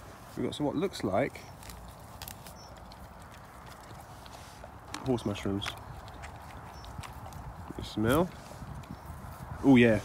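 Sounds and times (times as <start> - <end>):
dog sniffing and snuffling: 0.0 - 10.0
light rustling in grass: 0.0 - 10.0.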